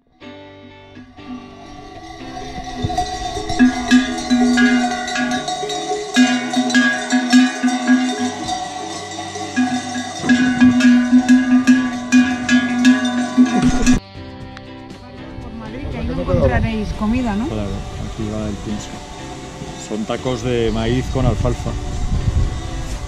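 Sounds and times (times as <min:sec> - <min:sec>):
livestock bells clanking: 0:00.9 - 0:14.0
loud close bell: 0:01.0 - 0:14.0.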